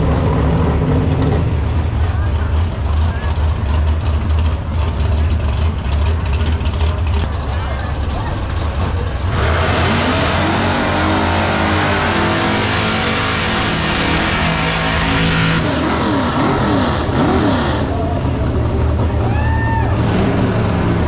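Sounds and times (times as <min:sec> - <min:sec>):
car engine revving: 0:08.2 - 0:19.1.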